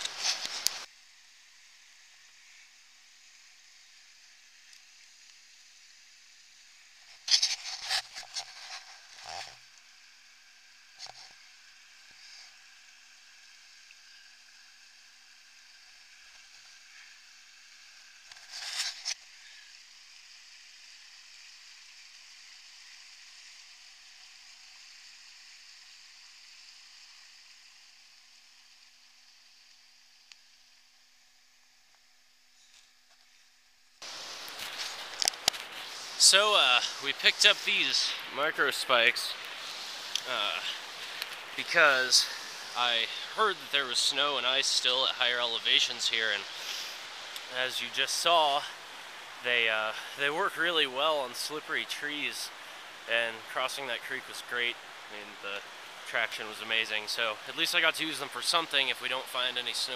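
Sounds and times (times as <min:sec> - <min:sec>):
rushing creek: 0:00.0 - 0:31.0, 0:34.0 - 0:59.9.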